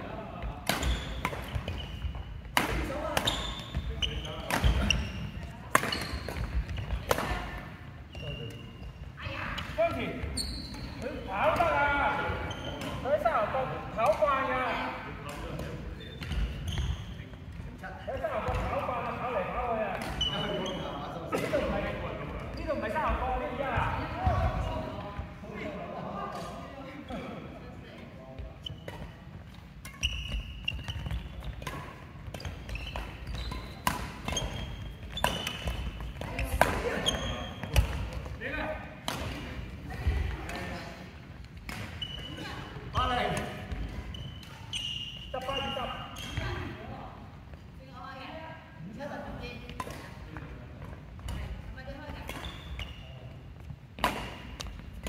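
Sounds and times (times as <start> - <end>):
shoe squeaks: 0.8 - 2.5, 3.2 - 7.1, 8.0 - 9.2, 10.2 - 11.6, 12.2 - 13.2, 15.9 - 17.3, 20.0 - 21.2, 28.5 - 38.0, 41.9 - 46.8, 52.1 - 53.4
racket striking shuttlecock: 2.5 - 3.3, 5.7 - 7.4, 30.7 - 36.9, 54.0 - 55.0.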